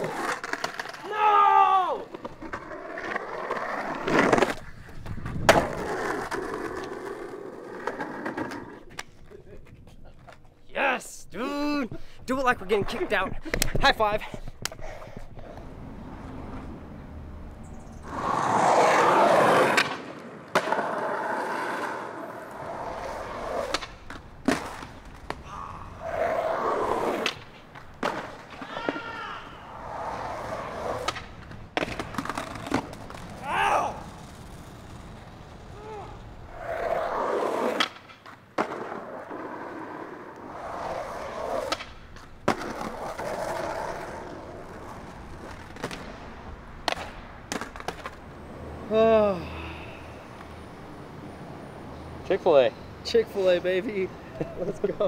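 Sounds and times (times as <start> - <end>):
skateboard wheels rolling on asphalt: 0.0 - 55.0
skateboard tail snap: 46.8 - 48.2.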